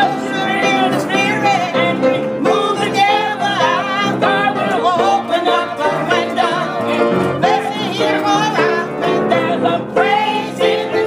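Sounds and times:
instrumental accompaniment: 0.0s - 11.0s
voices singing church song: 0.0s - 11.0s.

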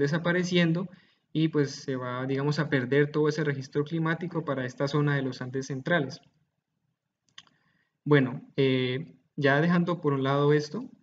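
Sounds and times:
person speaking: 0.0s - 6.4s, 8.0s - 11.0s.

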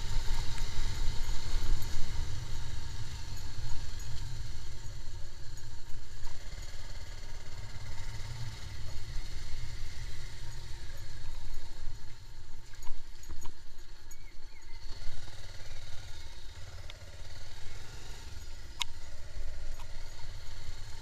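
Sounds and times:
motorcycle engine rumbling: 0.0s - 21.0s.

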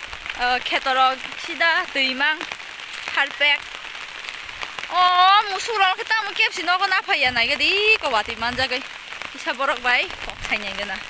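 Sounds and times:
rain pattering on an umbrella: 0.0s - 11.0s.

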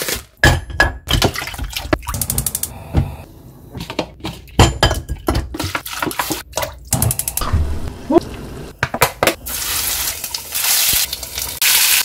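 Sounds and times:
water pouring into a pot: 9.4s - 12.0s.

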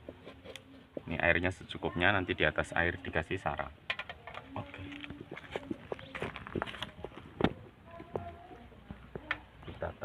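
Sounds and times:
shuffling and handling noises: 4.3s - 9.0s.

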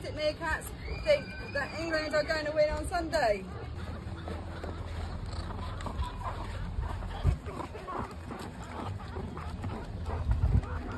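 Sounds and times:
animals scrabbling in plastic bucket: 3.6s - 10.9s.

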